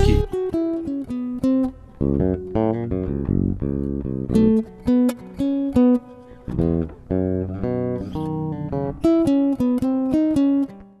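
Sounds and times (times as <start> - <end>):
electric bass plucked melodically: 0.0 - 10.9.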